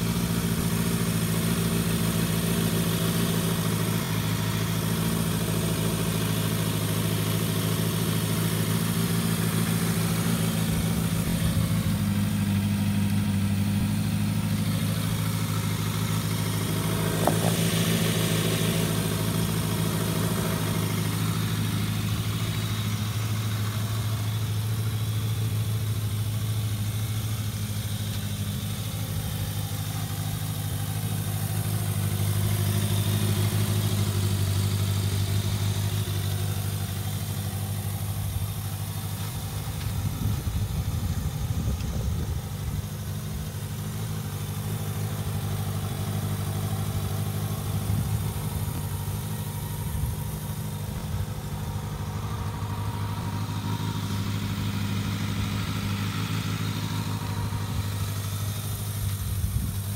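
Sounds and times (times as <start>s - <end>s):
motorcycle engine idling: 0.0s - 59.9s.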